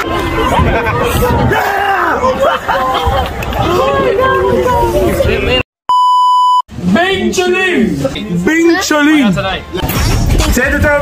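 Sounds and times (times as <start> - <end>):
electronic beep: 5.9 - 6.6.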